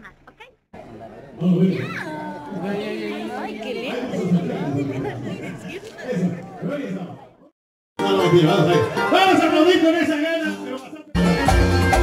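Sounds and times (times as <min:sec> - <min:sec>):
overlapping voices talking: 0:00.8 - 0:11.2.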